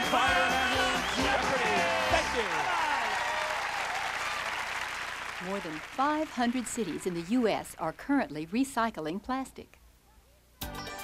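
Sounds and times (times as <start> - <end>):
audience applauding: 0.0 - 7.8.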